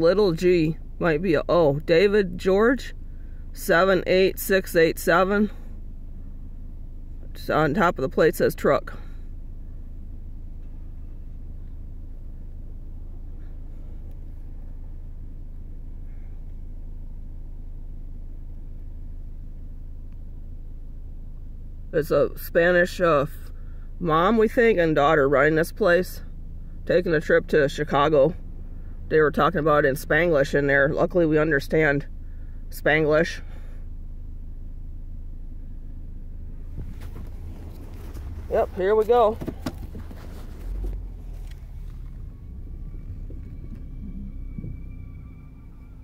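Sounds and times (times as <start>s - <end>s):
street traffic rumble: 0.0s - 46.0s.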